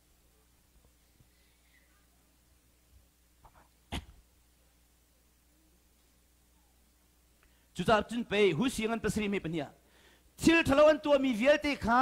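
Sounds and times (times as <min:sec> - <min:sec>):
man sneezing: 0:03.9 - 0:04.2.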